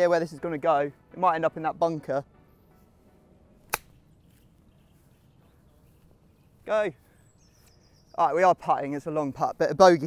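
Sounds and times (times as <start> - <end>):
golf club striking ball: 3.6 - 4.0.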